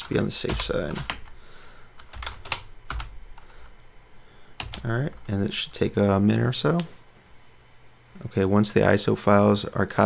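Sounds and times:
computer keyboard keystrokes: 0.0 - 1.3, 2.0 - 3.5, 4.6 - 4.9.

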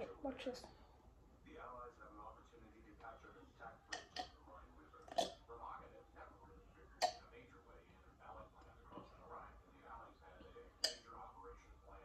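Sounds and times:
faint talking: 1.5 - 12.0.

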